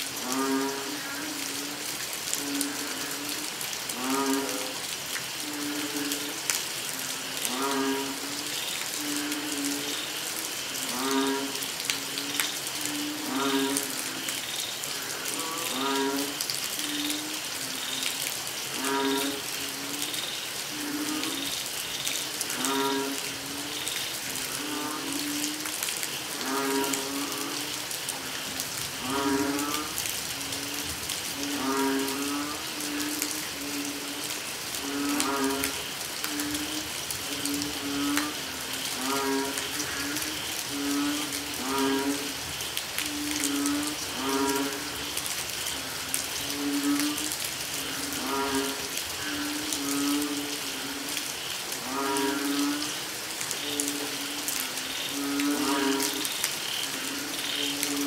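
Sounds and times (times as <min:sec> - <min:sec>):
rain hissing: 0:00.0 - 0:58.0
frogs calling: 0:00.1 - 0:58.0.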